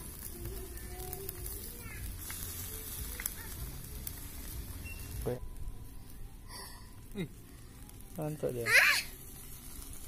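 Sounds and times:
meat sizzling on charcoal grill: 0:00.0 - 0:10.0.

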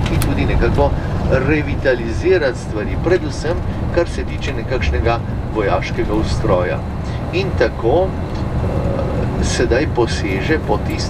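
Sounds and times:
coach engine and tyres rumbling: 0:00.0 - 0:11.0
man speaking: 0:00.0 - 0:11.0.

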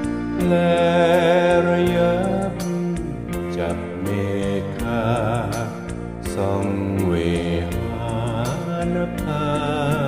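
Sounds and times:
karaoke backing track: 0:00.0 - 0:10.0
man singing pop ballad: 0:00.0 - 0:10.0.

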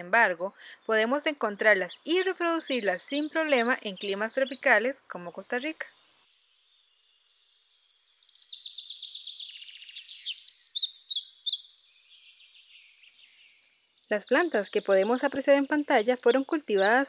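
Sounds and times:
songbird singing: 0:00.0 - 0:17.0.

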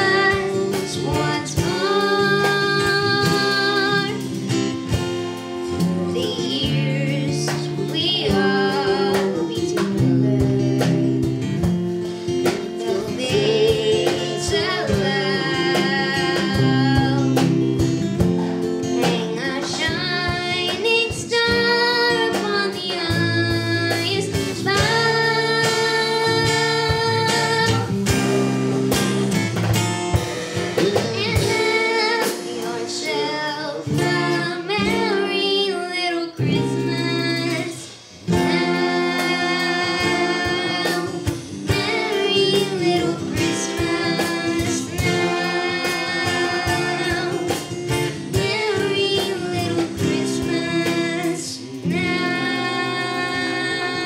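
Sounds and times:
girl singing: 0:00.0 - 0:29.4, 0:30.6 - 0:54.0
strummed acoustic guitar: 0:00.0 - 0:54.0
man singing: 0:12.7 - 0:17.4.

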